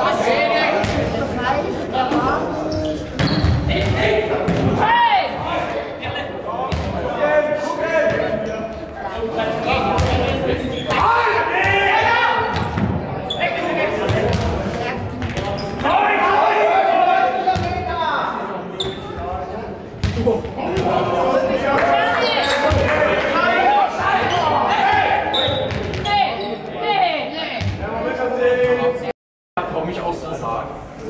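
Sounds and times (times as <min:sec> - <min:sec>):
players shouting in echoing hall: 0:00.0 - 0:19.5, 0:20.1 - 0:29.1.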